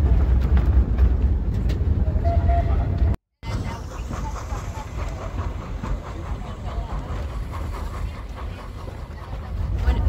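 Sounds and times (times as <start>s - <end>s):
steam train rumbling on track: 0.0s - 10.0s.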